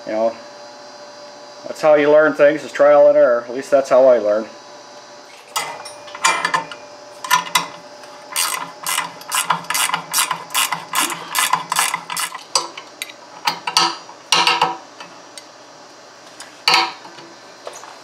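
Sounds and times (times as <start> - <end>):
ratchet wrench clicking: 8.4 - 12.4.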